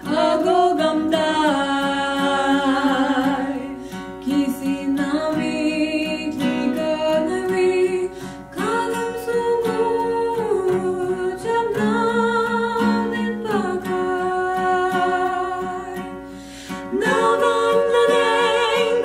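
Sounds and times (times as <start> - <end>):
strummed acoustic guitar: 0.0 - 19.0
women singing in harmony: 0.0 - 19.0.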